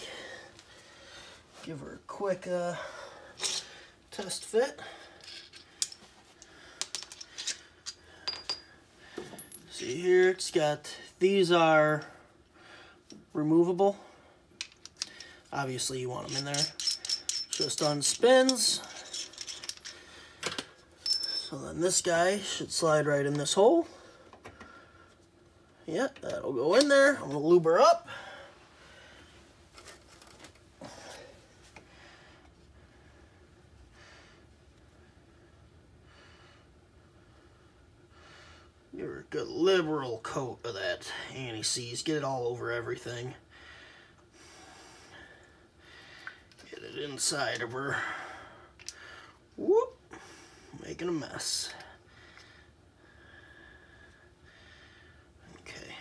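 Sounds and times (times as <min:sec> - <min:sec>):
metal parts clinking: 0:03.4 - 0:03.7, 0:05.0 - 0:06.1, 0:06.8 - 0:08.7, 0:16.0 - 0:22.0
rustling and handling noises: 0:29.2 - 0:31.9.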